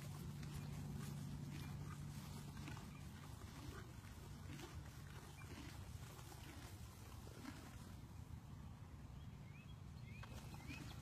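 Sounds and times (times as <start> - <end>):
horse chewing hay: 0.0 - 8.5
low steady hum: 0.0 - 11.0.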